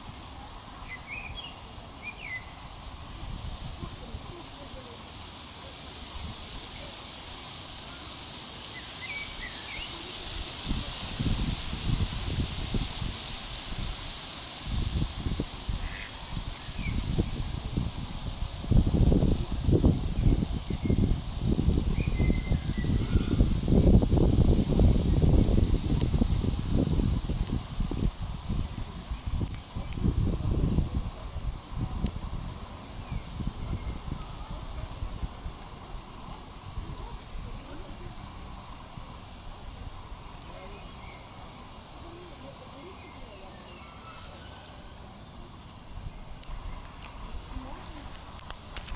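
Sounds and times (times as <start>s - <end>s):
steady high hiss: 0.0s - 48.9s.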